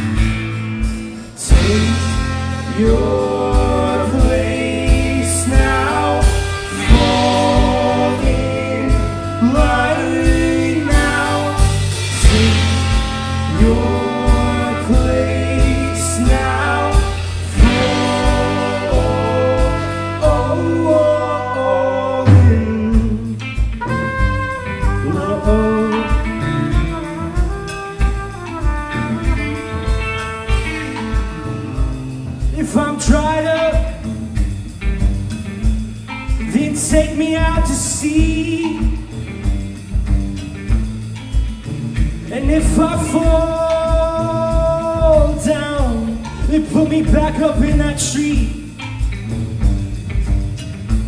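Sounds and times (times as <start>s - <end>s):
steady kick drum beat: 0.0s - 21.0s
bass guitar: 0.0s - 51.0s
drum kit beat: 0.0s - 51.0s
electric guitar: 0.0s - 51.0s
live band playing: 0.0s - 51.0s
person singing: 1.4s - 23.6s, 24.8s - 28.1s, 42.3s - 48.7s
trumpet melody: 1.5s - 32.8s.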